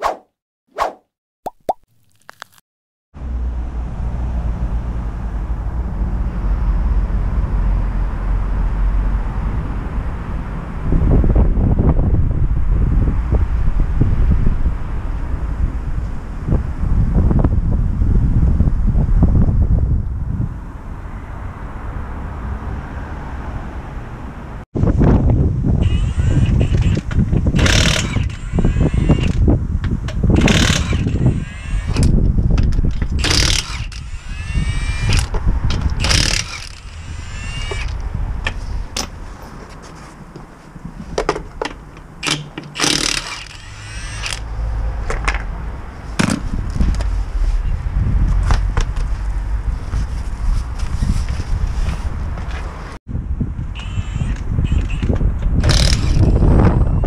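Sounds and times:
impact wrench bursts: 25.8 - 29.4, 30.4 - 32.1, 33.2 - 35.4, 36.0 - 38.0, 42.2 - 44.5, 53.8 - 56.5.

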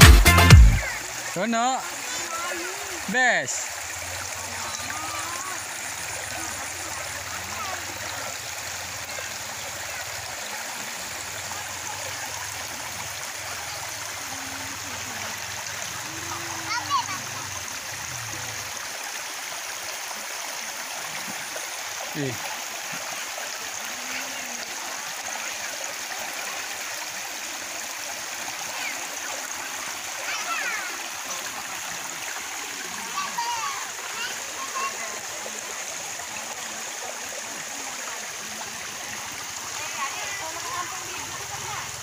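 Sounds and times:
stream flowing over stones: 0.0 - 42.0.

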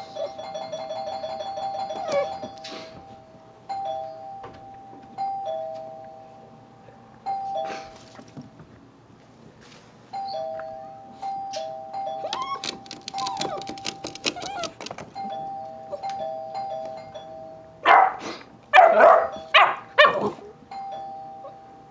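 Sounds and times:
ding-dong doorbell chime: 0.0 - 6.5, 7.2 - 7.9, 10.1 - 12.6, 15.2 - 17.8, 20.7 - 21.9
dog whining: 1.8 - 2.9, 12.1 - 15.0
dog barking loudly: 17.8 - 20.4.

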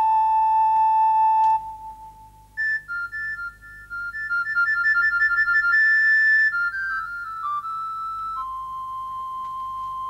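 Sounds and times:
flute melody: 0.0 - 10.0.

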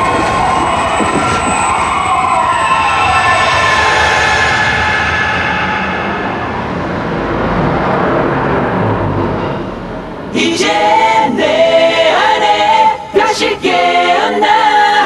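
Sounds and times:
steady noise: 0.0 - 15.0
choir singing: 10.3 - 15.0.

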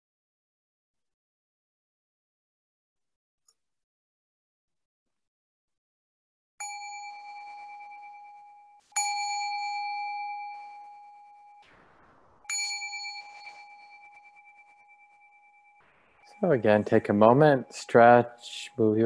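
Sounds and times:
meditation bell ringing: 6.6 - 11.7, 12.5 - 19.0.

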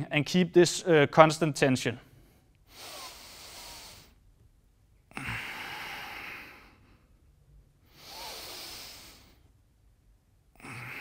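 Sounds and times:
man breathing deeply: 2.1 - 4.2, 5.1 - 7.2, 7.8 - 9.5, 10.6 - 11.0.

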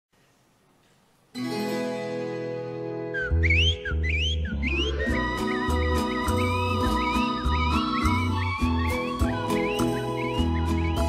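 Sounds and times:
high whistled chirps: 3.1 - 11.0.

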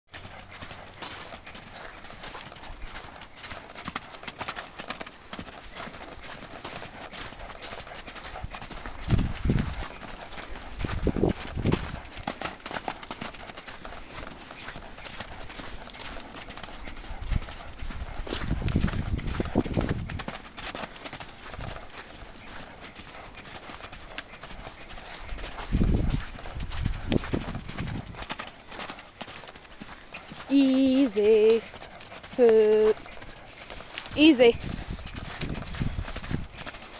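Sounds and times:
horse hoofbeats on dirt: 0.1 - 36.9.

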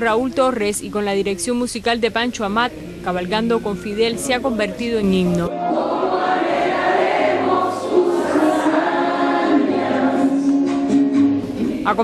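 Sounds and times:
chorus of voices singing: 5.5 - 12.0.

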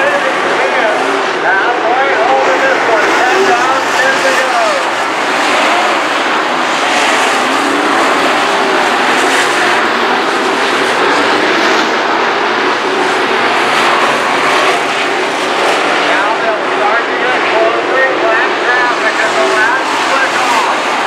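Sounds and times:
race car engines running hard: 0.0 - 21.0.

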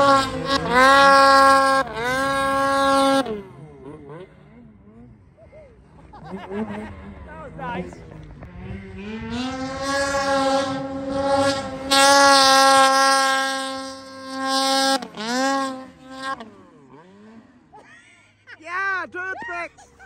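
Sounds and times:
snowmobile engine revving: 0.0 - 20.0.

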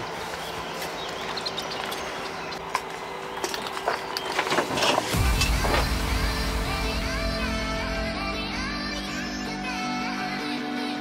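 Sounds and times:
electronic music with heavy bass: 5.1 - 11.0.

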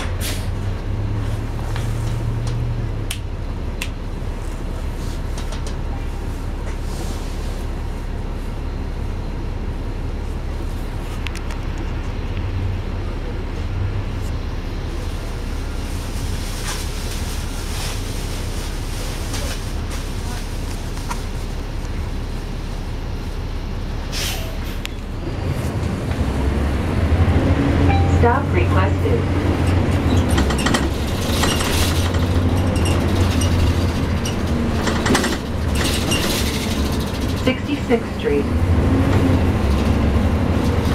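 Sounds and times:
bus diesel engine: 0.0 - 40.9.

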